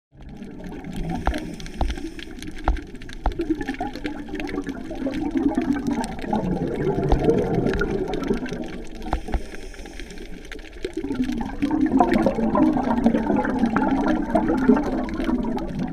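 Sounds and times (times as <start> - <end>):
underwater breath bubbling: 0.2 - 15.9.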